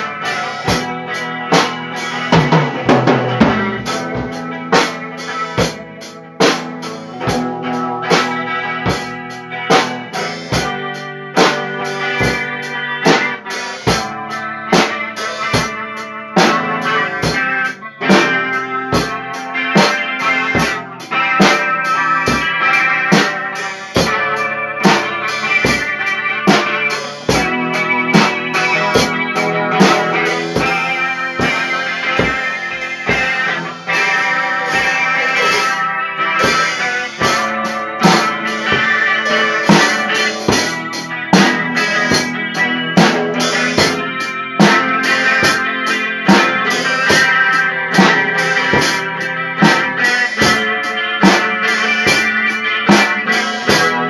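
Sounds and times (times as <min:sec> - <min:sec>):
drum kit beat: 0:00.0 - 0:54.0
sustained guitar notes: 0:00.0 - 0:54.0.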